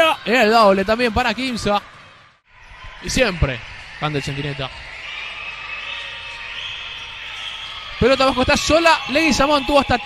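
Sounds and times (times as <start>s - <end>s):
indoor basketball court din: 0.0s - 10.0s.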